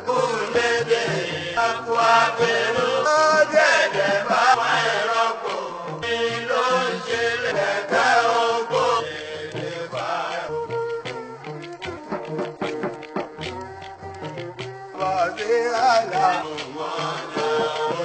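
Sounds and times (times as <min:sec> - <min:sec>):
hand drum percussion: 0:00.0 - 0:18.0
person chanting: 0:14.9 - 0:18.0.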